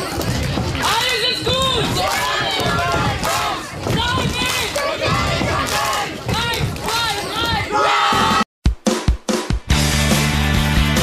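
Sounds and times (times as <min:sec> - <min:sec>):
group shouting in unison: 0:07.4 - 0:08.5.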